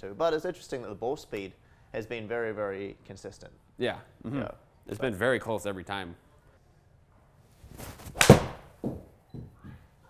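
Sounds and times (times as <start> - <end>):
golf club whooshing: 7.7 - 8.7
ball thudding against screen: 7.8 - 9.1
golf ball struck with sharp crack: 8.1 - 8.8.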